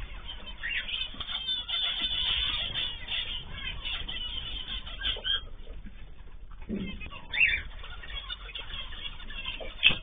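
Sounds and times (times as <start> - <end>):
high bird chirp: 0.0 - 5.7, 6.8 - 10.0
birds calling: 0.0 - 10.0
steady low hum: 0.0 - 10.0.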